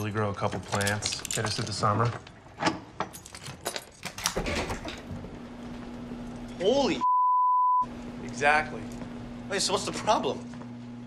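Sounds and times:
padlock metal clicks and rattles: 0:00.5 - 0:02.0
metal door pulled open: 0:02.6 - 0:05.1.

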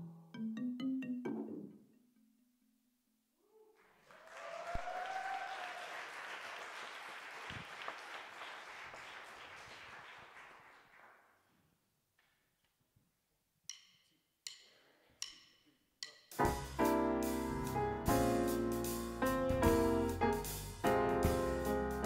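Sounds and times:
audience applauding: 0:03.8 - 0:11.4
drumsticks clicking together: 0:13.7 - 0:16.3.

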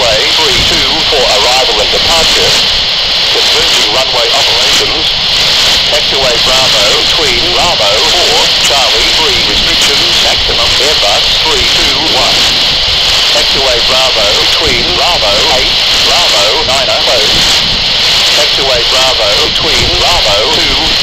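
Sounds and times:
voice over radio speaker: 0:00.0 - 0:17.7, 0:18.3 - 0:21.0
radio hiss: 0:00.0 - 0:21.0.

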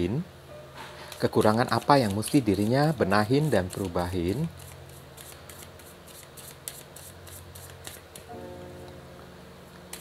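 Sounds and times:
soft background music: 0:00.4 - 0:00.9, 0:08.3 - 0:10.0
cards being shuffled: 0:01.1 - 0:08.3.

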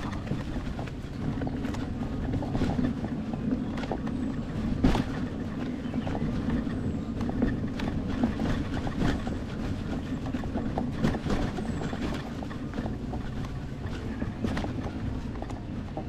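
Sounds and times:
knocks and rattles from bumps: 0:00.0 - 0:16.0
tyre and wind rumble: 0:00.0 - 0:16.0.

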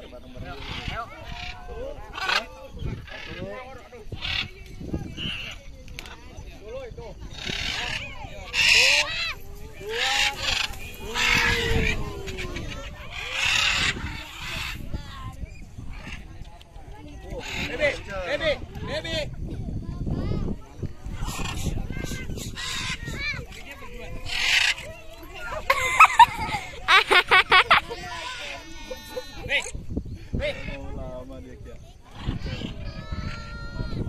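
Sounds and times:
people's voices: 0:00.0 - 0:34.0
parrots screeching: 0:07.3 - 0:14.8, 0:21.2 - 0:23.2, 0:24.2 - 0:24.8, 0:32.2 - 0:33.6.

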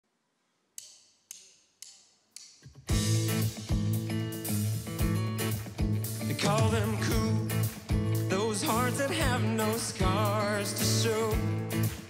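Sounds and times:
sharp percussive clicks: 0:00.8 - 0:06.4.

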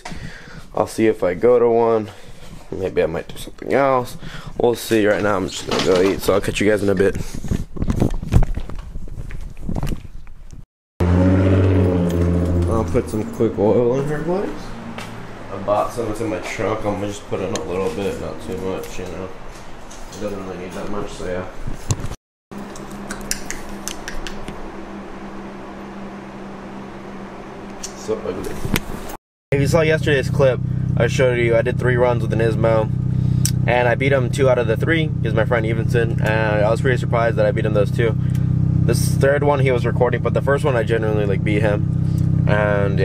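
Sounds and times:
rotary engine idling: 0:29.6 - 0:43.0.

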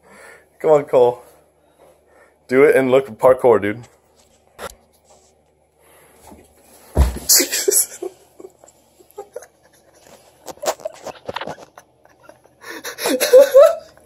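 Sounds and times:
body thumping on floor: 0:06.8 - 0:07.5
people laughing: 0:07.3 - 0:10.0, 0:11.4 - 0:14.0.

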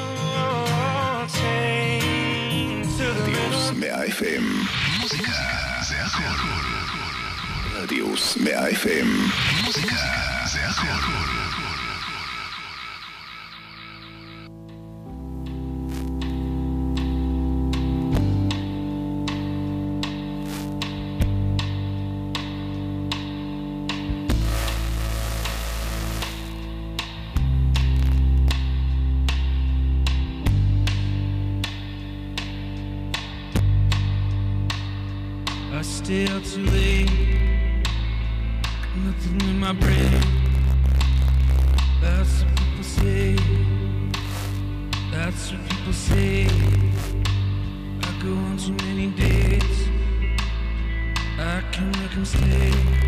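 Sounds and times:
spoken radio jingle: 0:03.0 - 0:14.5
electronic music: 0:03.0 - 0:21.6, 0:23.2 - 0:31.2, 0:39.8 - 0:48.0.

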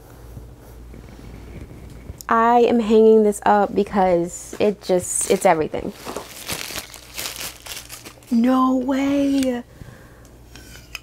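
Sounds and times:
low room noise rumble: 0:00.0 - 0:11.0.

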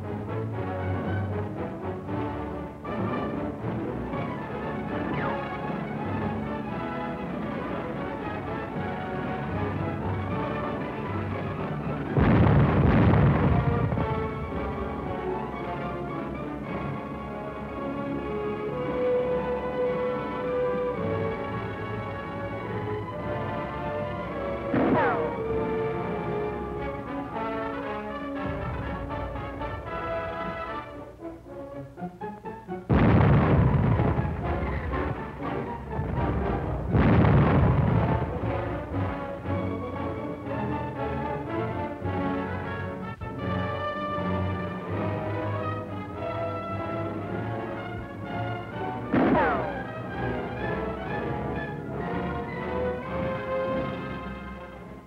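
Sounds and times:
orchestral music with brass: 0:00.0 - 0:55.0
falling whistles with sharp bangs: 0:05.0 - 0:05.5
loud explosions: 0:12.1 - 0:16.9, 0:24.5 - 0:26.5, 0:28.3 - 0:30.9, 0:32.9 - 0:39.9, 0:48.8 - 0:51.4.

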